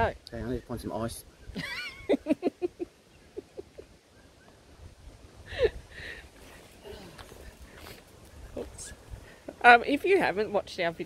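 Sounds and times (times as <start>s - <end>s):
wind buffeting microphone: 4.5s - 10.9s.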